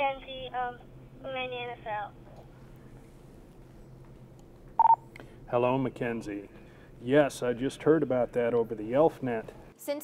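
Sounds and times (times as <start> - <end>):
two-way radio beep: 4.8 - 5.0.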